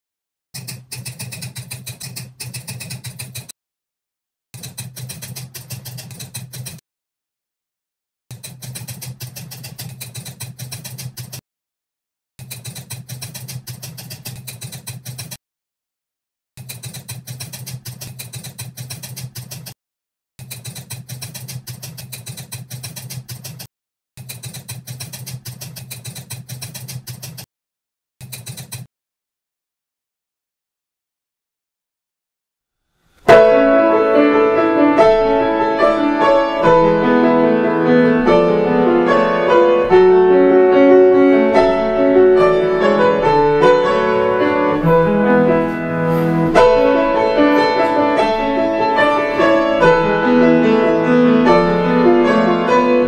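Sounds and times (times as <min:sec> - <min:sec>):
rapid keyboard typing clicks: 0:00.6 - 0:03.5, 0:04.6 - 0:06.8, 0:08.3 - 0:11.4, 0:12.4 - 0:15.4, 0:16.6 - 0:19.8, 0:20.4 - 0:27.5, 0:28.2 - 0:28.9.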